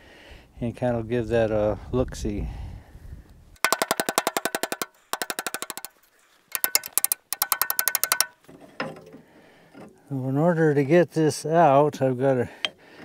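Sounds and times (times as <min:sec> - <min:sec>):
ratchet wrench clicking: 0:03.6 - 0:08.4.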